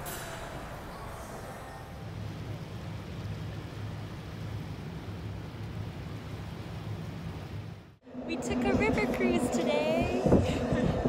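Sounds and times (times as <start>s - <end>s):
boat engine drone: 0.0s - 11.0s
wind and water rushing: 0.0s - 11.0s.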